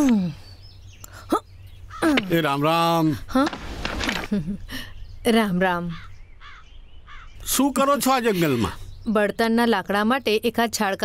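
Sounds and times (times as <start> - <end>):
crow cawing: 1.9 - 2.3, 5.9 - 7.4.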